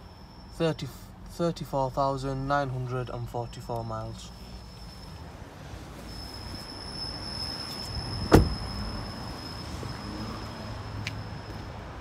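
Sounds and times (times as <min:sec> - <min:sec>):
car door shutting: 0:08.2 - 0:08.7.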